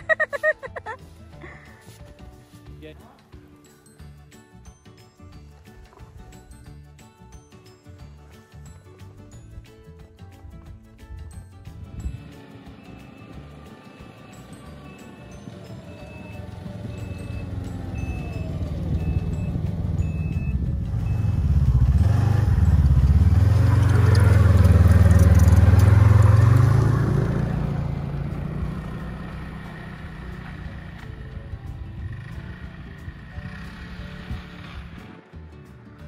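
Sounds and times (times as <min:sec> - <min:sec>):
snowmobile engine passing by: 0:12.2 - 0:31.4.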